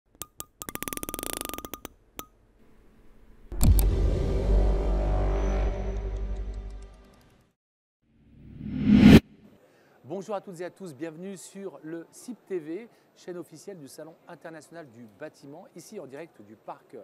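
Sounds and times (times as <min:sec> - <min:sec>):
deep bass hit with chord: 0:03.5 - 0:06.9.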